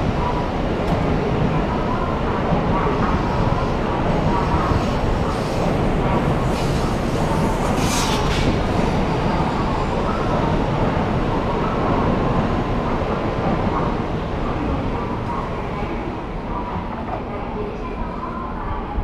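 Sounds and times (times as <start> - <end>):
train wheels rumbling on rail: 0.0 - 19.0.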